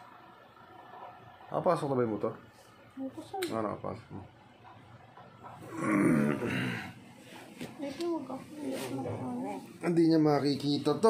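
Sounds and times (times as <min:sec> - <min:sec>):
growling roar-like vocal sound: 0:05.7 - 0:06.8.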